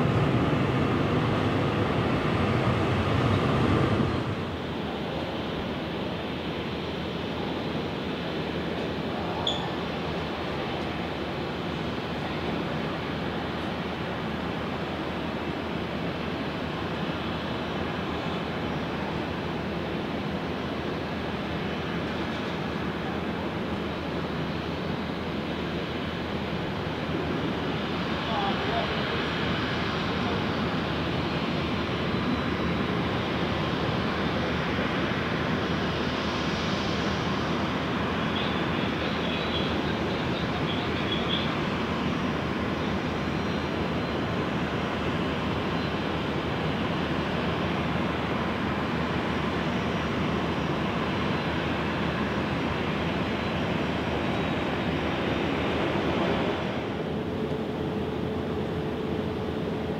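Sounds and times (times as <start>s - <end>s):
airliner jet engines: 0.0s - 59.9s
faint high chirps: 9.4s - 9.7s.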